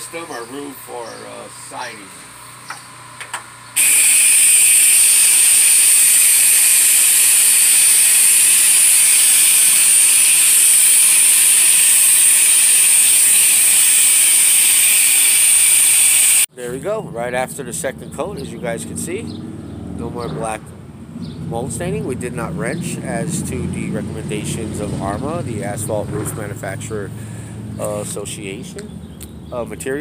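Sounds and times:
spray gun hissing: 0:03.8 - 0:16.5.

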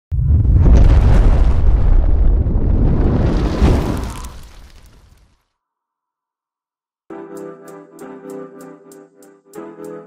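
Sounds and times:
deep rumbling explosion: 0:00.1 - 0:05.2.

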